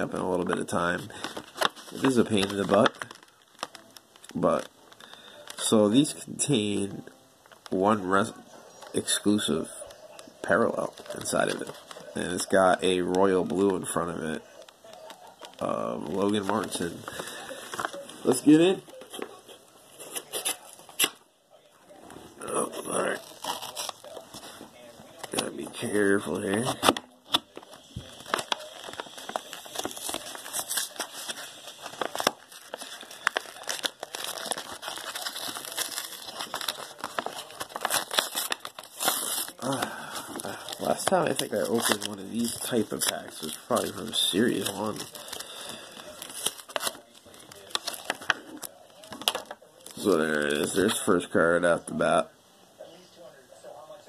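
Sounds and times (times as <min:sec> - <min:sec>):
plastic blister pack crackling: 0:00.0 - 0:06.8, 0:07.4 - 0:19.3, 0:21.9 - 0:51.2.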